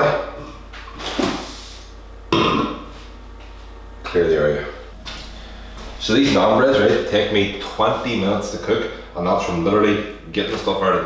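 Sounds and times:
person burping: 2.3s - 2.9s.

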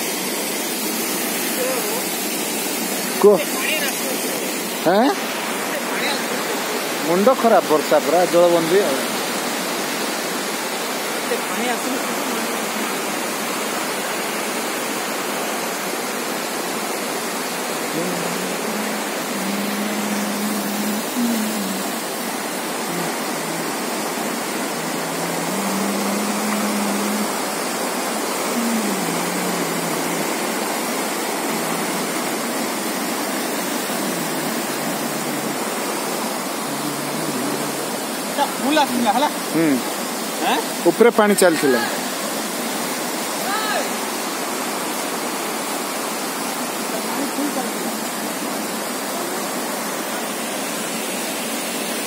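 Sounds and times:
floodwater pouring over bridge: 0.0s - 52.0s.

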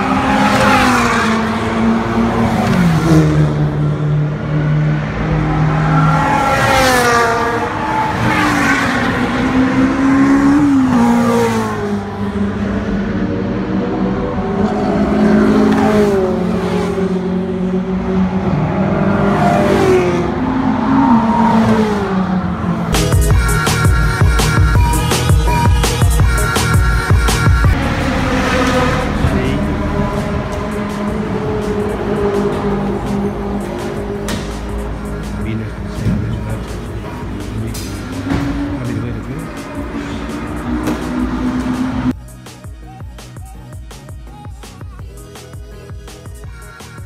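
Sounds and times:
sports cars driving past: 0.0s - 23.1s, 27.7s - 42.2s
background music: 22.9s - 47.0s.

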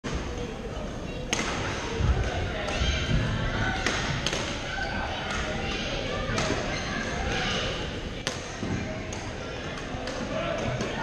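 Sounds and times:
echoing voices: 0.1s - 11.0s.

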